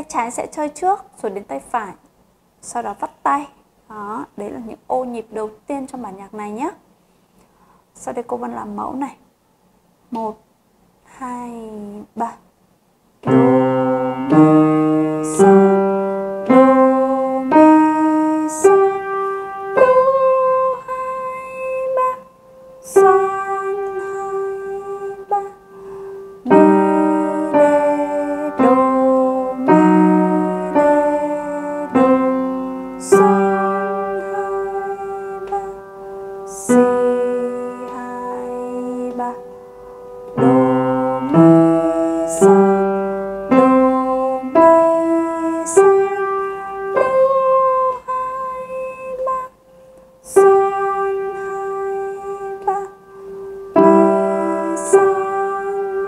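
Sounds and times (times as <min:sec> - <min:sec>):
slow piano piece: 0:13.2 - 0:56.0.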